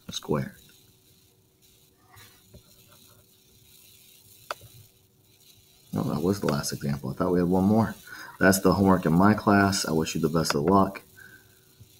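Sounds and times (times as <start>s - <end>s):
faint ticks: 1.6s - 7.0s.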